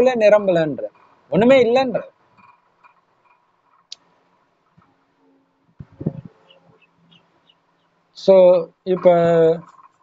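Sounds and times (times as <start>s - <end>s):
bird chirping: 4.8s - 10.0s.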